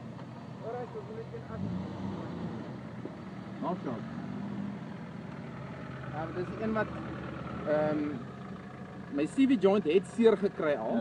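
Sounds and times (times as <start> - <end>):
engine running at low revs: 0.0 - 11.0.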